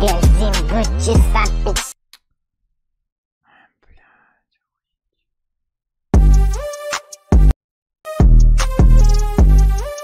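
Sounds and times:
person whispering: 0:03.4 - 0:04.9.

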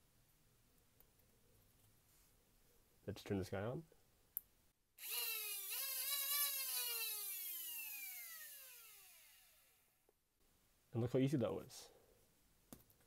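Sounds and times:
flywheel motors whining: 0:05.0 - 0:09.8.

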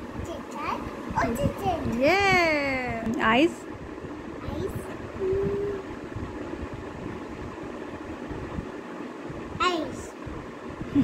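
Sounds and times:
child humming: 0:05.2 - 0:05.9.

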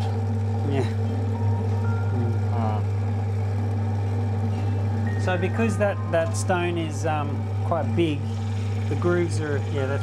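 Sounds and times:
polishing machine motor humming: 0:00.0 - 0:10.0.

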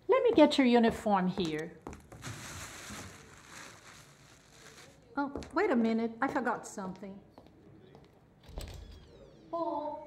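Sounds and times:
uniform cloth rustling: 0:01.9 - 0:05.1.

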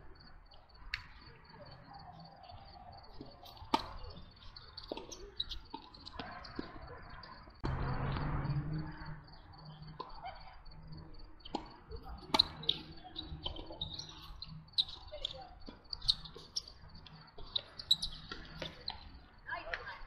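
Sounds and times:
crickets chirping: 0:00.0 - 0:20.0
tennis balls struck by rackets: 0:03.1 - 0:08.2, 0:11.4 - 0:15.0.

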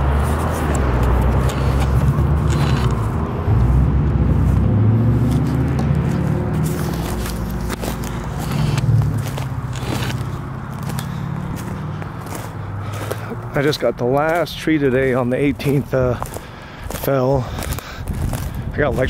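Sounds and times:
footsteps crunching on dry canes: 0:00.0 - 0:19.0
road traffic passing: 0:00.0 - 0:19.0.

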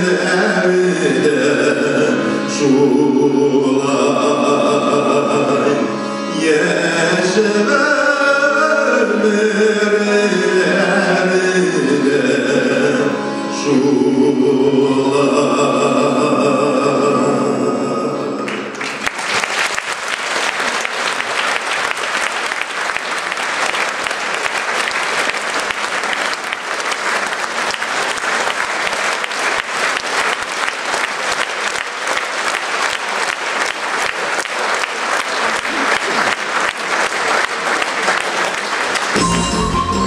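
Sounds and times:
song with singing and instruments: 0:00.0 - 0:18.8, 0:39.1 - 0:40.0
audience applause: 0:18.5 - 0:40.0.

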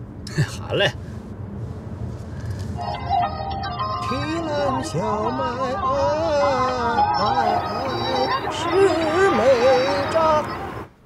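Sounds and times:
opera accompaniment on car audio: 0:00.0 - 0:11.0
road noise inside car: 0:00.0 - 0:11.0
person singing opera: 0:03.8 - 0:10.7.

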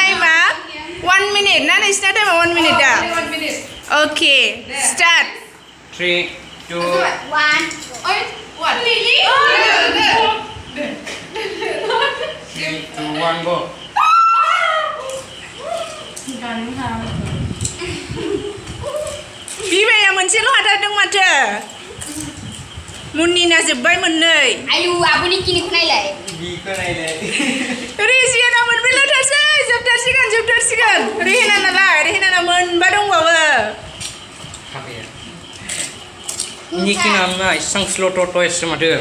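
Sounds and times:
young people exclaiming: 0:08.1 - 0:10.6, 0:13.9 - 0:16.2, 0:18.1 - 0:19.9, 0:28.0 - 0:33.7.

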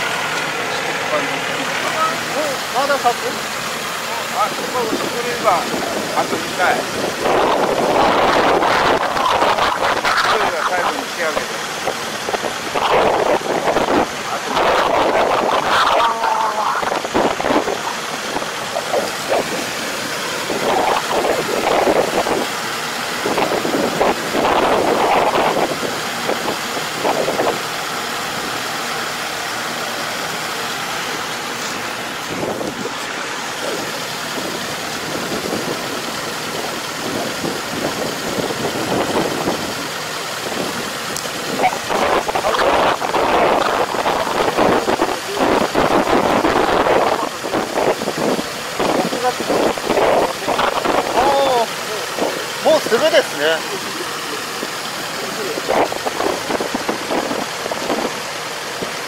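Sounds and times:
tractor diesel engine running: 0:00.0 - 0:59.0
wind buffeting microphone: 0:04.4 - 0:28.6, 0:31.0 - 0:52.6, 0:55.4 - 0:59.0.

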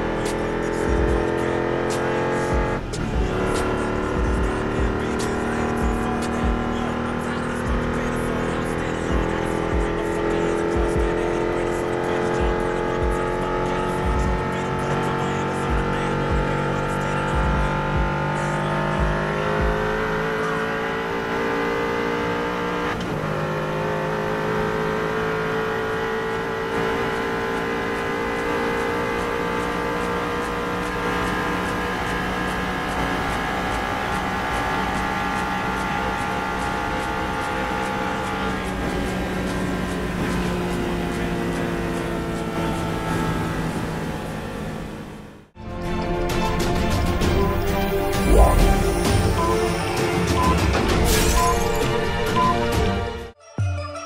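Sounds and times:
car engine at full throttle: 0:00.0 - 0:45.6, 0:46.6 - 0:52.8.

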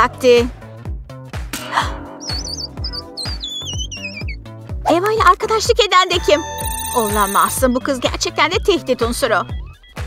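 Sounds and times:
music with beat and bass: 0:00.9 - 0:10.0
high wavering whistle melody: 0:02.2 - 0:04.4, 0:06.2 - 0:07.6.

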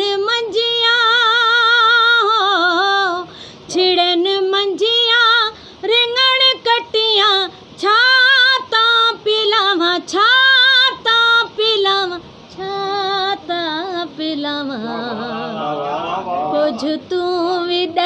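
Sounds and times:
woman singing unaccompanied: 0:00.0 - 0:18.0.

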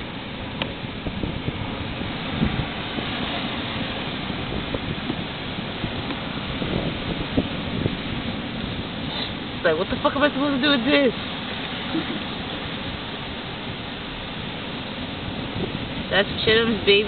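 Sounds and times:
wind noise on microphone: 0:00.0 - 0:17.0.

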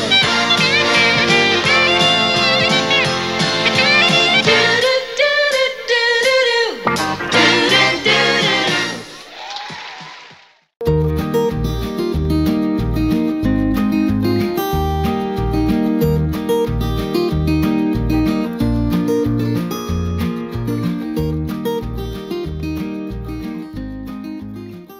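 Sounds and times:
strummed acoustic guitar: 0:00.0 - 0:05.0, 0:06.9 - 0:09.0, 0:10.8 - 0:24.9.

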